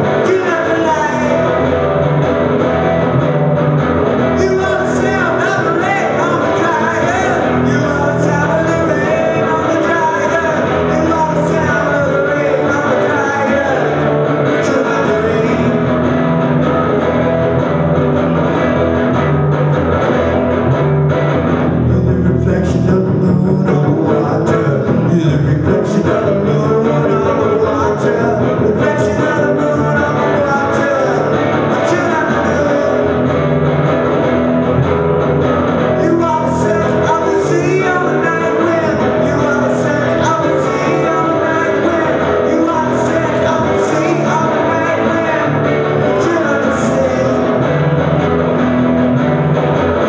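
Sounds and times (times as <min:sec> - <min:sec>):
bass guitar: 0:00.0 - 0:50.0
guitar strumming chords: 0:00.0 - 0:50.0
rock band playing: 0:00.0 - 0:50.0.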